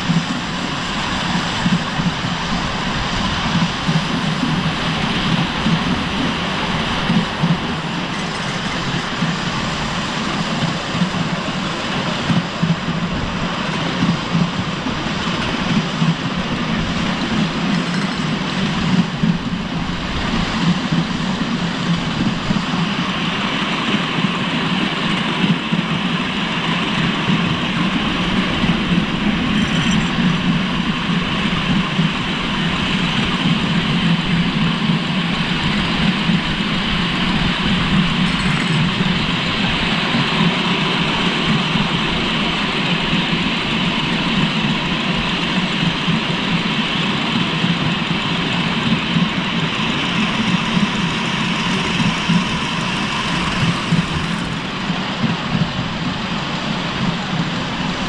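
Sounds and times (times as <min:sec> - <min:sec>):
small wheels rattling on track: 0:00.0 - 0:58.0.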